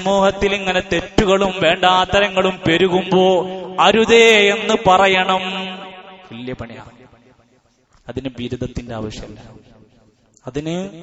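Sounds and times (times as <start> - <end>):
man chanting: 0.0 - 6.9.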